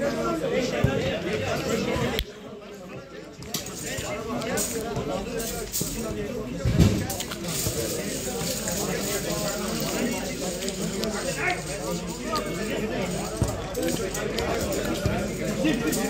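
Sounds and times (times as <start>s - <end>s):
steady background noise: 0.0s - 16.0s.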